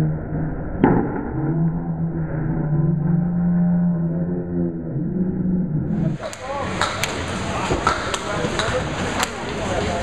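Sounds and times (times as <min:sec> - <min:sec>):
bowling alley din: 0:00.0 - 0:10.0
low steady hum: 0:00.0 - 0:10.0.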